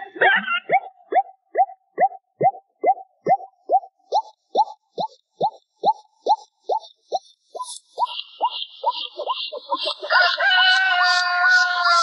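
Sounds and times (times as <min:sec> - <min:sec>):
faint rhythmic high ticking: 0:00.7 - 0:10.1.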